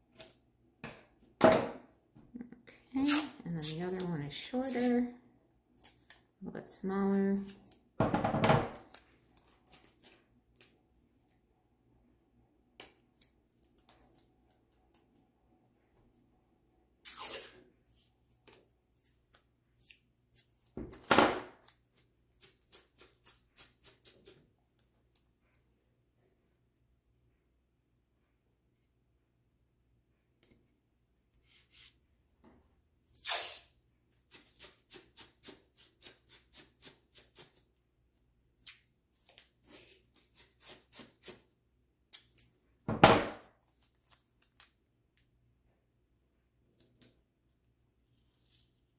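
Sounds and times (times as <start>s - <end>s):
masking tape tearing: 3.0s - 4.0s, 4.6s - 5.0s, 17.0s - 17.6s, 33.1s - 33.7s
short crisp tape strokes: 3.0s - 4.0s, 17.0s - 20.6s, 33.1s - 37.6s.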